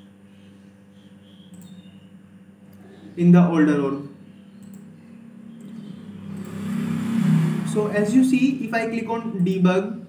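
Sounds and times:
motor vehicle humming: 4.7 - 9.4.

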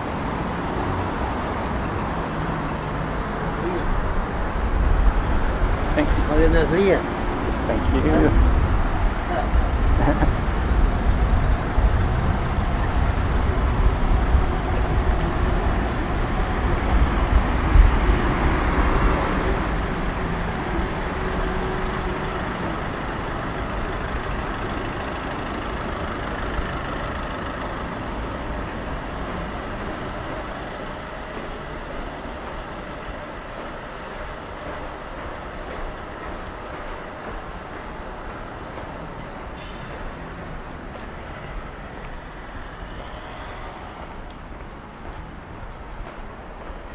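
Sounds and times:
vehicle passing close: 0.0 - 32.8
street traffic passing: 0.0 - 46.9.

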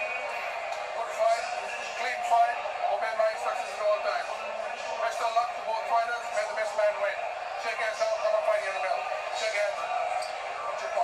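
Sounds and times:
man talking through tv speaker: 0.0 - 11.0.

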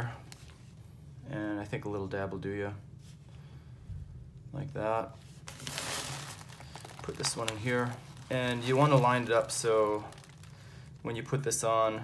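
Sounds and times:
sleeping pad fabric crinkling: 5.4 - 10.8.

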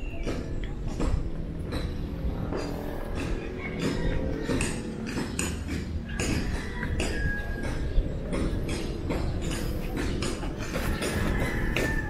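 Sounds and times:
steady low rumble: 0.0 - 12.0.

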